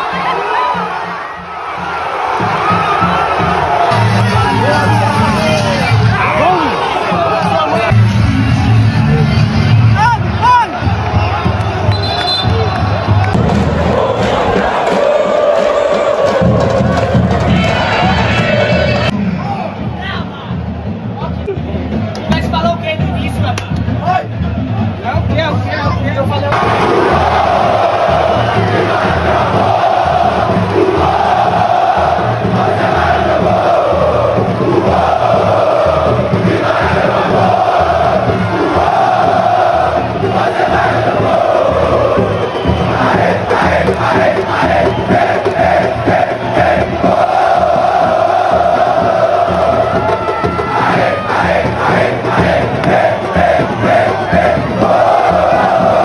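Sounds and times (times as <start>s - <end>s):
stadium crowd chanting: 0.0s - 19.4s, 26.5s - 56.0s.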